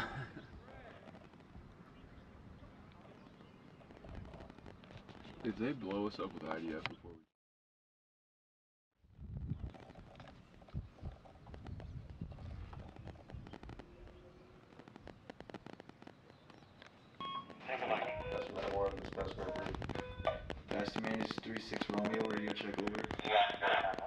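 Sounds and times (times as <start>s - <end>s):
man talking: 5.4s - 7.2s, 17.7s - 19.9s, 20.7s - 23.3s.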